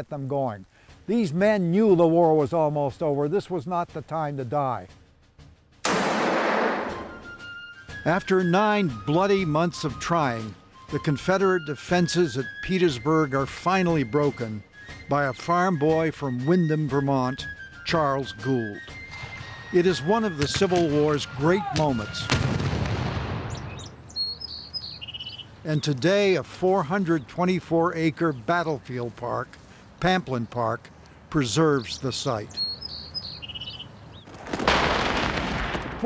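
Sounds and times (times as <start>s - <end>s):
cannon shot boom: 5.8s - 7.2s, 22.1s - 23.9s
gunfire blast: 5.8s - 7.3s, 22.0s - 23.8s, 34.4s - 36.0s
birds chirping: 7.1s - 22.6s, 23.2s - 34.4s.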